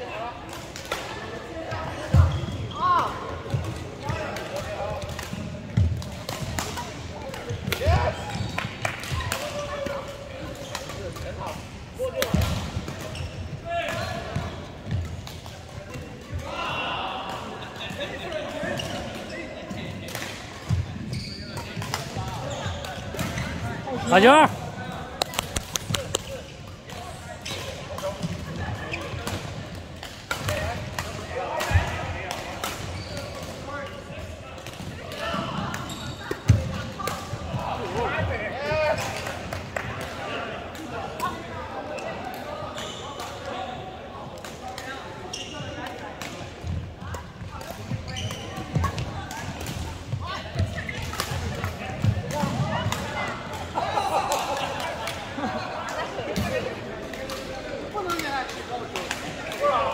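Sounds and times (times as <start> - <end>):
voices in large hall: 0.0 - 59.9
rackets hitting shuttlecock: 3.0 - 13.2, 21.6 - 33.7.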